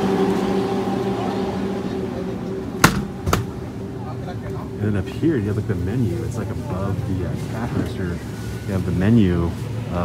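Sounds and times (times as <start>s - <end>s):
drink cooler humming: 0.0s - 10.0s.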